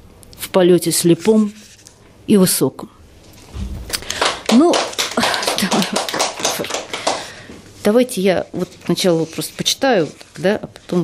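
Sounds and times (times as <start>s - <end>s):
people clapping: 3.7s - 7.5s.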